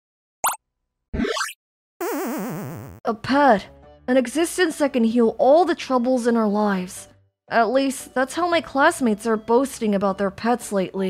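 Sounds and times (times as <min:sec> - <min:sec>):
cartoon water plop: 0:01.2 - 0:02.9.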